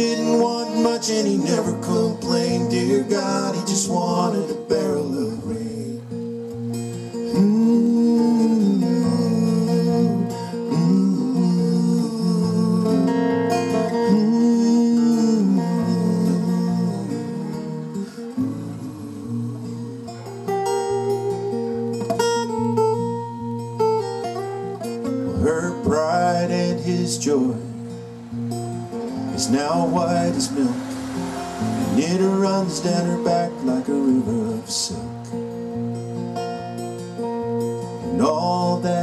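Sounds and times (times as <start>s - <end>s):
wordless singing: 0.0s - 6.4s, 7.2s - 21.6s, 25.3s - 35.4s, 37.9s - 39.0s
acoustic guitars strummed and picked: 0.0s - 39.0s.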